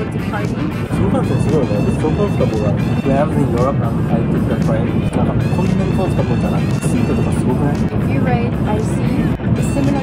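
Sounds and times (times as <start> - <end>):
background music: 0.0 - 10.0
conversation: 0.0 - 10.0.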